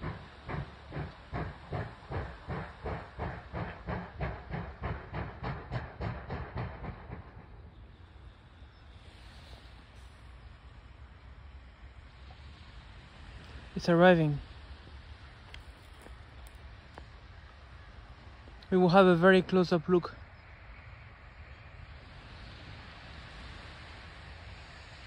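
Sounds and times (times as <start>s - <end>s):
distant steam locomotive chuffing: 0.0s - 25.0s.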